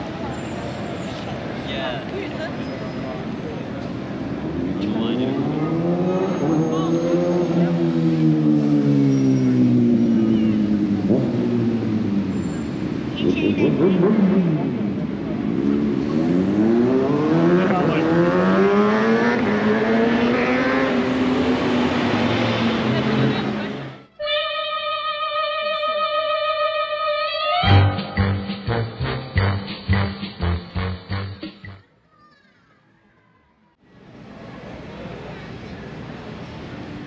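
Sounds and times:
car engine accelerating: 4.4 - 24.1.

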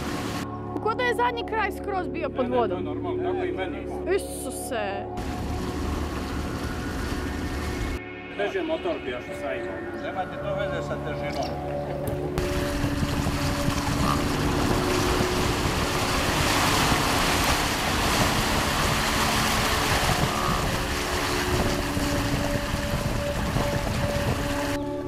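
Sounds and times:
water rushing along boat hull: 0.0 - 0.4, 5.2 - 8.0, 12.4 - 25.0
wind buffeting microphone: 12.1 - 24.8.

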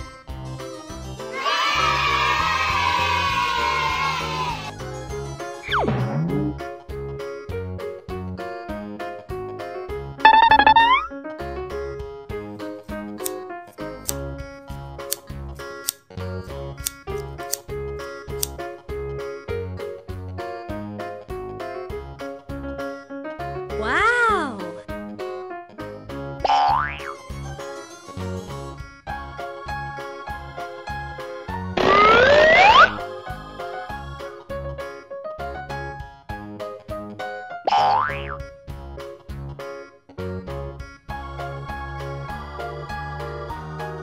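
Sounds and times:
cheerful keyboard music: 0.0 - 44.0
high-pitched rising sound effect: 5.7 - 6.6, 10.3 - 11.1, 31.8 - 33.0.

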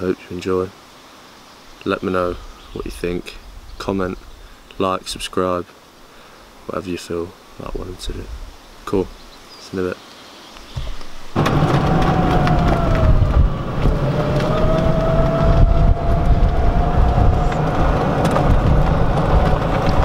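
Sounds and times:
golf buggy driving: 11.3 - 20.0.

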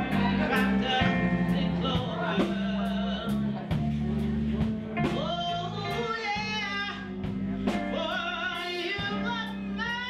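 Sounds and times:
woman singing: 0.0 - 4.0, 4.7 - 10.0
held musical accompaniment: 0.0 - 10.0.

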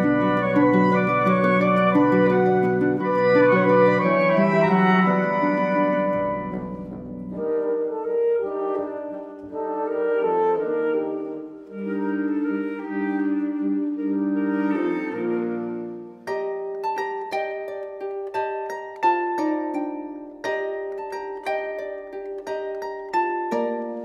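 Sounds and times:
wind ensemble playing held chords: 0.0 - 16.2.

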